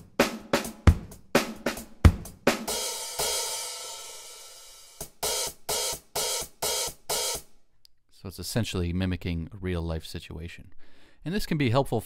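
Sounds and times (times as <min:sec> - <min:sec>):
closed hi-hat strikes: 0:00.0 - 0:07.5.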